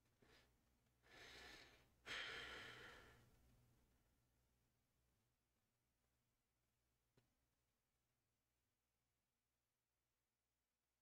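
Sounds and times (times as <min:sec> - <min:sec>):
person exhaling: 0:01.1 - 0:03.2.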